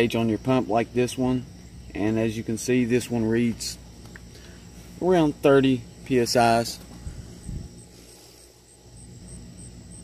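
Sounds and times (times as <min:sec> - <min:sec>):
low background rumble: 0:00.9 - 0:10.0.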